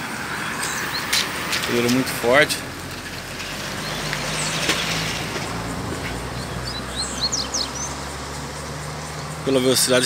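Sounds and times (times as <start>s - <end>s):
bird singing fast high chirps: 6.3s - 9.5s.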